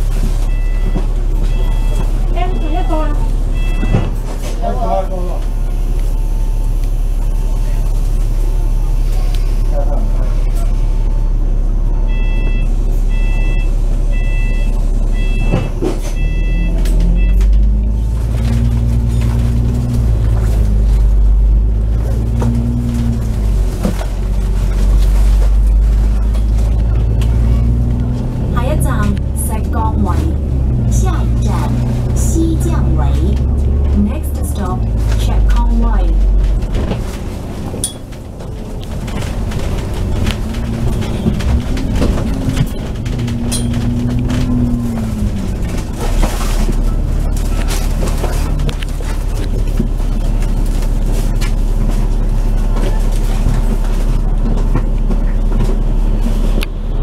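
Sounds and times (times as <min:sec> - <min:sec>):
bus engine idling and pulling away: 0:00.0 - 0:57.0.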